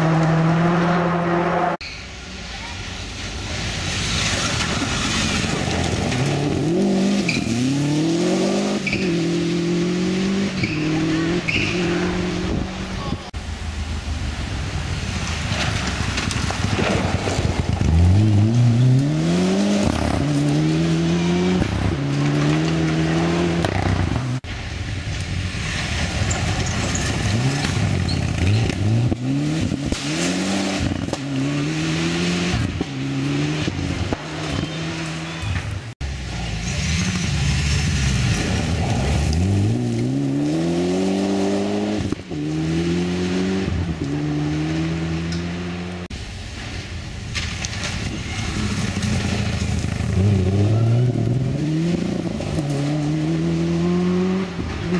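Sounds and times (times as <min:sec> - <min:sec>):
rally car engines accelerating: 0:00.0 - 0:13.3, 0:15.3 - 0:24.5, 0:25.2 - 0:46.1, 0:47.8 - 0:54.9
gravel spraying from tyres: 0:01.8 - 0:12.1, 0:13.4 - 0:45.2, 0:46.1 - 0:54.9.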